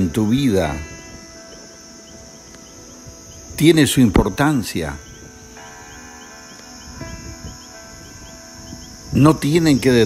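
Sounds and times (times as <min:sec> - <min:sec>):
crickets chirping: 0:00.0 - 0:10.0
soft background music chords: 0:00.0 - 0:10.0.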